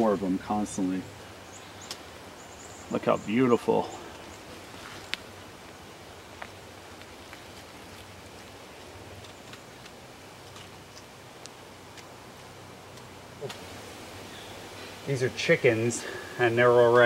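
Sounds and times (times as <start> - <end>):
faint steady hiss: 0.0 - 17.0
rustles among dry leaves: 1.3 - 17.0.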